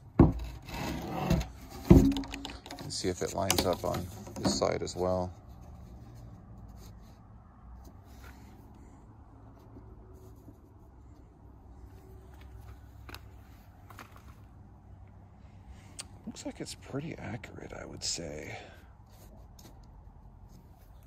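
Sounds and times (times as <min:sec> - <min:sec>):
light taps and scrapes: 0:00.3 - 0:08.9, 0:19.1 - 0:21.0.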